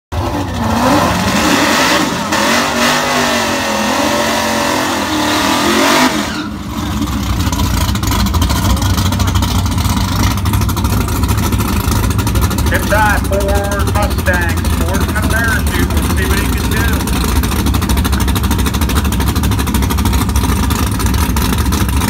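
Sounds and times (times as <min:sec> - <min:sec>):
car engine idling: 0:00.1 - 0:22.0
car engine revving high: 0:00.2 - 0:09.6, 0:10.2 - 0:22.0.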